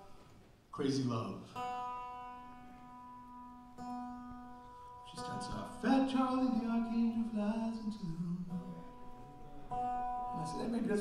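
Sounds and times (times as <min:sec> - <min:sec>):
acoustic guitar notes ringing: 0:01.3 - 0:11.0.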